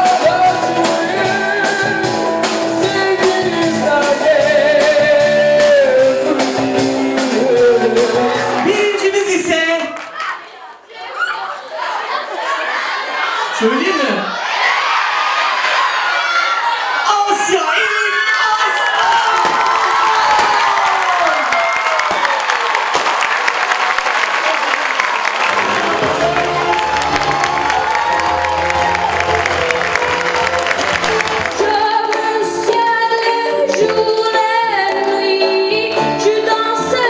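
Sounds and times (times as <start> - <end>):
audience applauding and cheering: 7.2 - 10.5, 18.0 - 33.0
whoops: 26.0 - 30.7.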